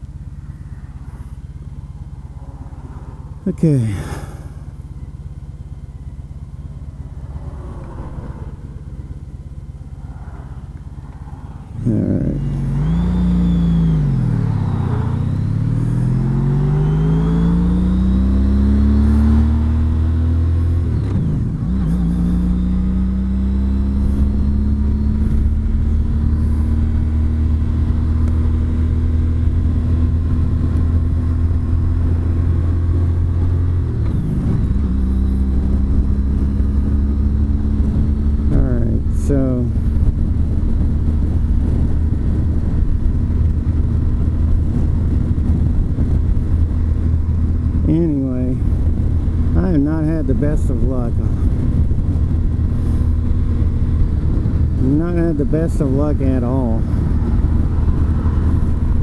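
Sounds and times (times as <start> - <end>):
motorcycle engine running: 0.0 - 59.0
road and wind rumble: 0.0 - 59.0.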